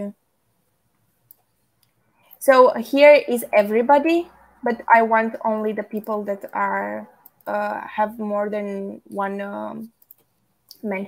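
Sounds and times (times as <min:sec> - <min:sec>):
faint keyboard clicks: 0:09.9 - 0:10.8.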